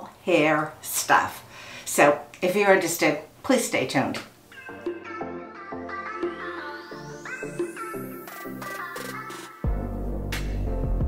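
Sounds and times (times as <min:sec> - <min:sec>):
electronic synth music: 0:04.5 - 0:11.0
rising synth sweep: 0:04.6 - 0:08.6.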